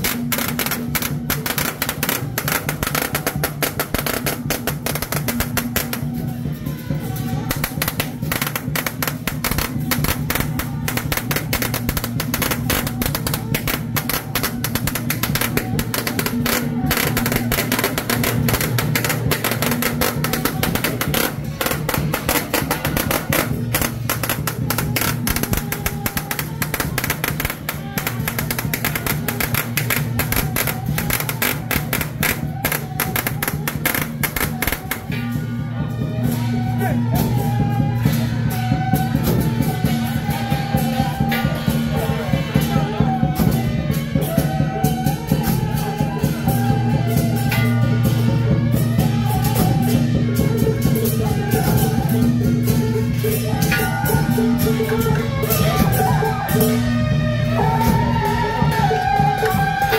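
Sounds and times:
procession music with drums: 0:00.0 - 0:59.9.

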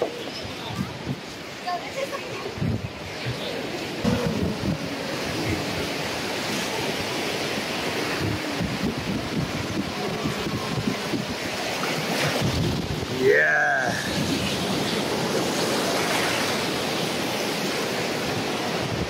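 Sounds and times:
surf breaking on sand: 0:00.0 - 0:19.0
wind buffeting microphone: 0:00.0 - 0:19.0.

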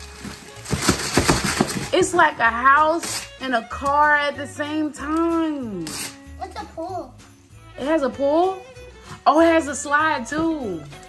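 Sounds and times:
wrapping paper ripping: 0:00.0 - 0:02.0
background music: 0:00.0 - 0:11.0.

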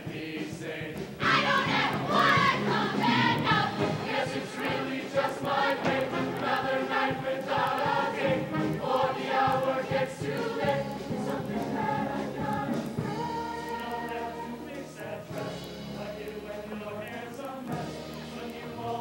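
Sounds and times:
mixed choir singing: 0:00.0 - 0:19.0
music: 0:00.0 - 0:19.0.

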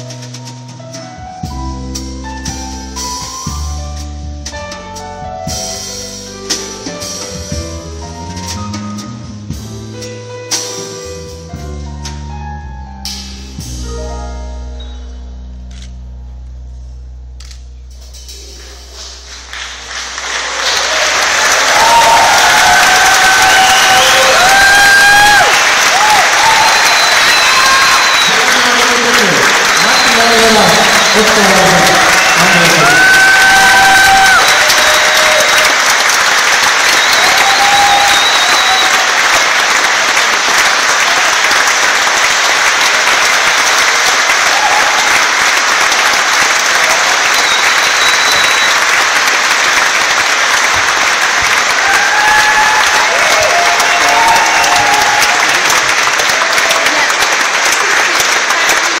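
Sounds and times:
audience applauding: 0:18.5 - 0:59.0.

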